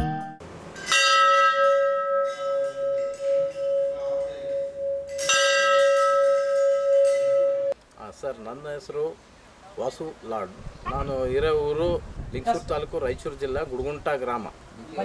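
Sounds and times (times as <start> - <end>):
temple bell ringing: 0.0 - 7.8.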